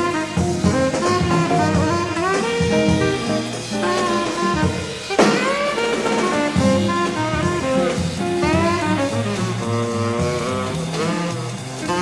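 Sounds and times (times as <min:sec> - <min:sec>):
sharp drum accent: 0:00.0 - 0:12.0
swing jazz group playing: 0:00.0 - 0:12.0
tenor saxophone melody: 0:00.0 - 0:12.0.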